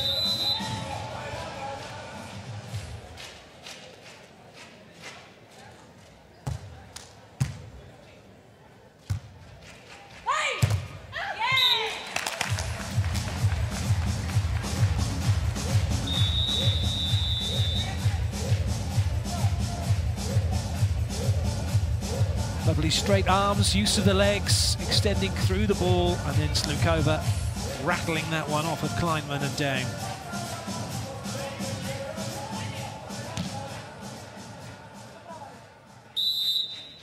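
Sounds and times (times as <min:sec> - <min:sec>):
music: 0:00.0 - 0:05.2, 0:12.3 - 0:37.0
dance music with steady beat: 0:12.7 - 0:35.0.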